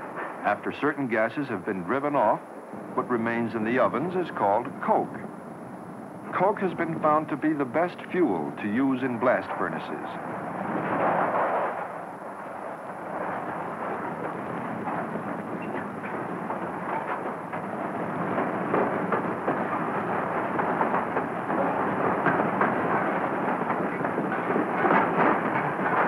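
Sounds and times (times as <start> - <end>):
roaring fire with crackling: 9.9 - 26.0.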